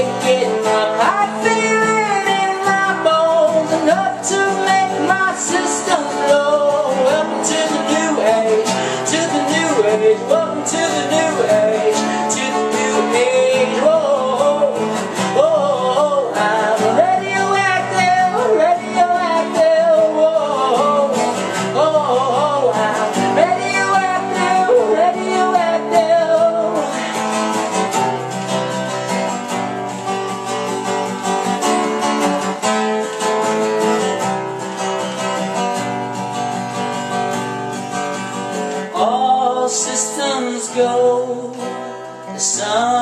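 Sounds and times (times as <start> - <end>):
man singing: 0.0 - 27.3, 38.8 - 43.0
acoustic guitar strumming: 0.0 - 43.0.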